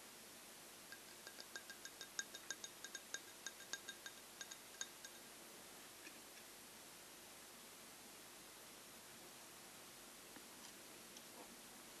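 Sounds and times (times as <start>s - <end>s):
fingernails tapping on glass: 1.0s - 5.2s.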